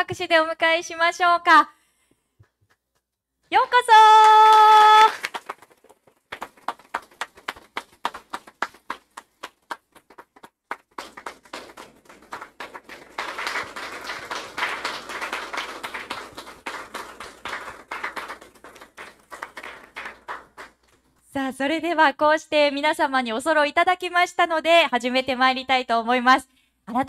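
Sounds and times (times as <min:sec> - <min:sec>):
audience applauding: 0:04.1 - 0:21.0.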